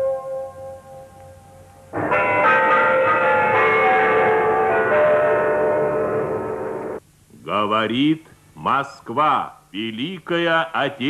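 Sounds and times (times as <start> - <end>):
clock bell chimes ringing: 2.0 - 7.0.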